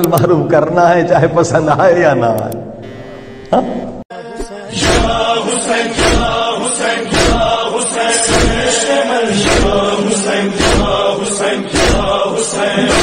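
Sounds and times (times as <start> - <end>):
chanted vocal lament: 4.1 - 13.0.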